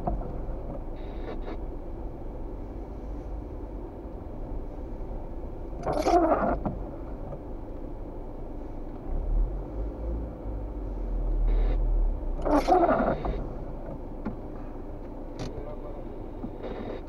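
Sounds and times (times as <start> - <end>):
car engine and tyres rumbling: 0.0 - 17.0.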